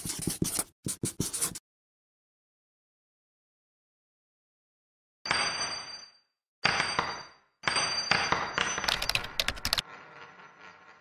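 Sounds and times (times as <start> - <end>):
sharp typing-like clicks: 8.8 - 9.8.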